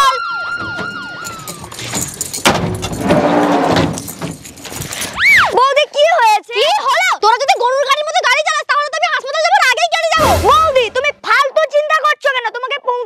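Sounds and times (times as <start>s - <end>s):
ambulance siren winding down: 0.0s - 1.9s.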